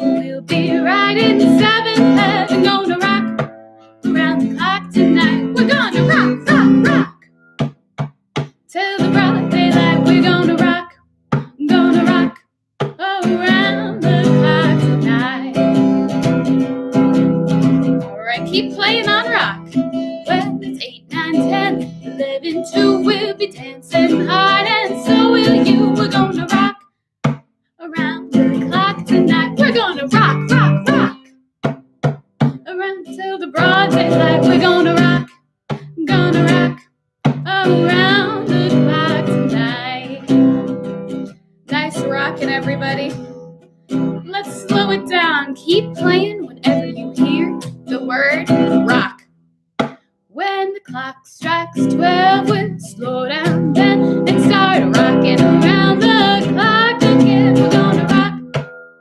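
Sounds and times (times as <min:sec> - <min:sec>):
woman singing: 0:00.0 - 0:07.2, 0:08.7 - 0:16.4, 0:17.7 - 0:26.8, 0:27.8 - 0:31.3, 0:32.4 - 0:40.8, 0:41.7 - 0:43.5, 0:44.2 - 0:49.2, 0:50.4 - 0:58.6
acoustic guitar strumming: 0:00.0 - 0:32.6, 0:33.5 - 0:49.2, 0:51.5 - 0:59.0.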